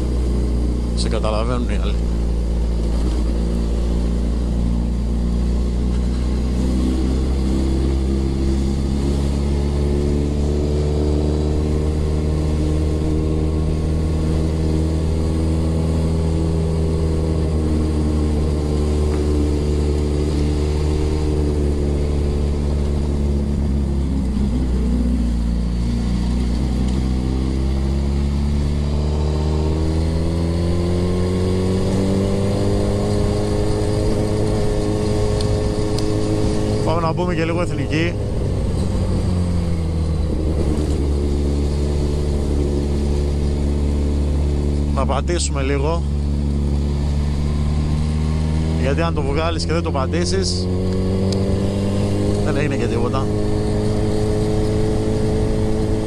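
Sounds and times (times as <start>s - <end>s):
motorcycle engine at low revs: 0.0s - 56.0s.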